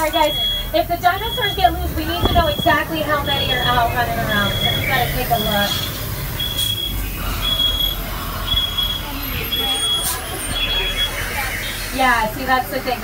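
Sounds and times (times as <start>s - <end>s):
moving vehicle rumble: 0.0s - 13.0s.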